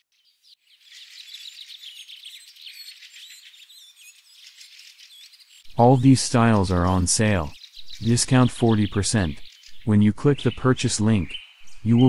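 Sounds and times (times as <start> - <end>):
birds chirping faintly: 0.1 - 12.0.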